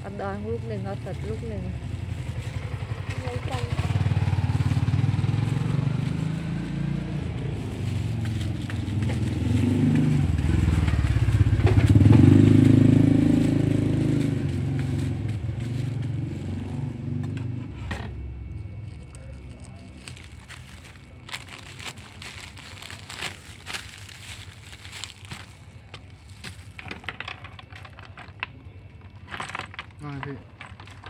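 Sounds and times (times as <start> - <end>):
motorcycle engine running: 0.0 - 26.9.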